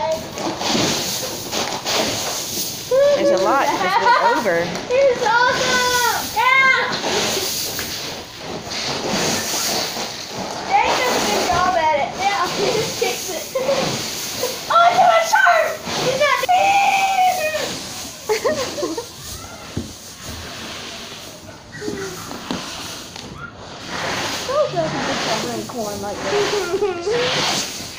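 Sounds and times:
hiss of shifting corn kernels: 0:00.0 - 0:27.9
children calling out: 0:02.8 - 0:07.3, 0:10.7 - 0:20.0, 0:21.4 - 0:23.6.

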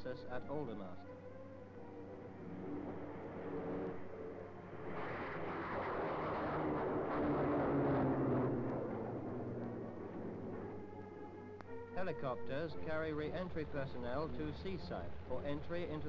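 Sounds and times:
jet aircraft rushing overhead: 0:01.6 - 0:16.0.

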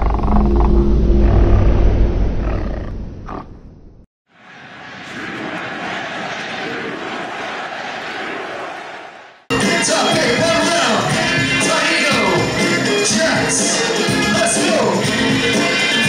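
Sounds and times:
held low tones: 0:00.0 - 0:04.0.

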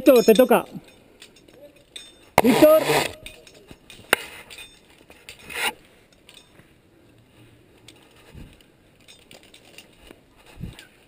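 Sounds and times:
rope scraping rush: 0:02.4 - 0:03.3.

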